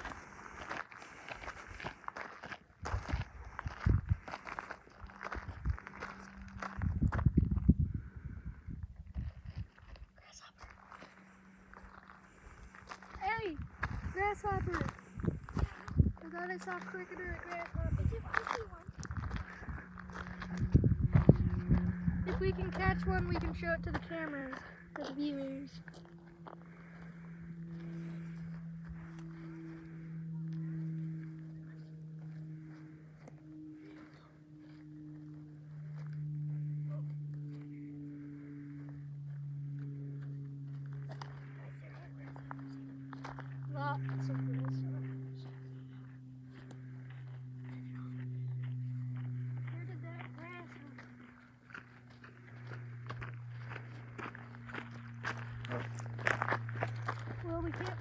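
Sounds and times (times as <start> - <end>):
footsteps running on dry grass: 0.0 - 8.2, 46.5 - 58.0
steady low hum: 0.0 - 58.0.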